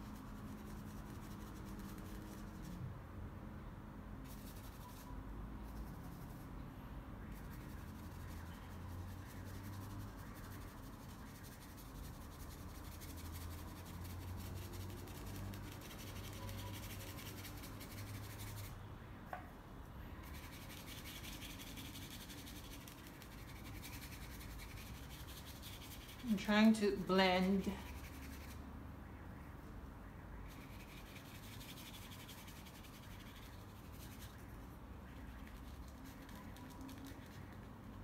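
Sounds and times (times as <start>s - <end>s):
paintbrush scratching on canvas: 0.0s - 2.8s, 4.2s - 6.6s, 7.3s - 18.8s, 20.2s - 28.6s, 30.5s - 38.0s.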